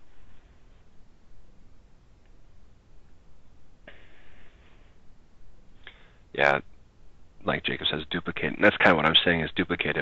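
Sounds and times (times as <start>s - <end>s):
microphone rumble and hiss: 0.0s - 10.0s.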